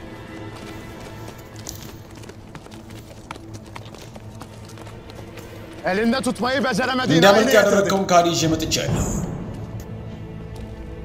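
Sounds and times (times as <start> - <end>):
horse hooves clopping on dirt: 0.0 - 8.1.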